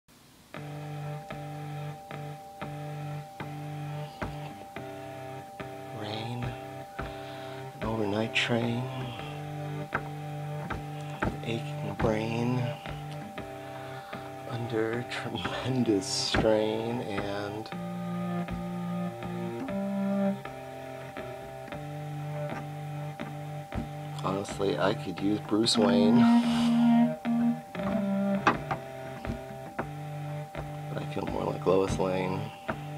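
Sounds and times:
harmonium chords: 0.5s - 32.9s.

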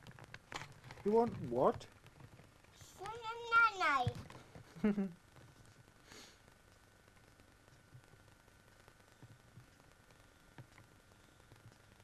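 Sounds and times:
adult laughing: 4.7s - 5.2s.

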